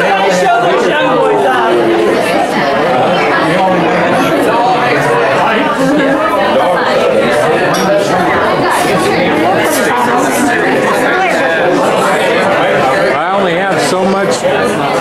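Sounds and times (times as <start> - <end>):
crowd chatter in a large hall: 0.0 - 15.0.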